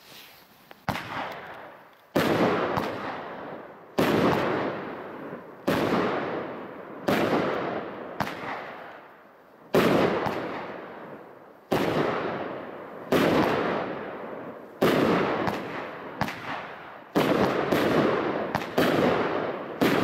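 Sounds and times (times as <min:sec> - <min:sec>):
small firework pops: 0:00.6 - 0:03.2, 0:08.2 - 0:09.1, 0:14.8 - 0:19.2
firework bangs: 0:00.8 - 0:09.1, 0:09.7 - 0:20.0.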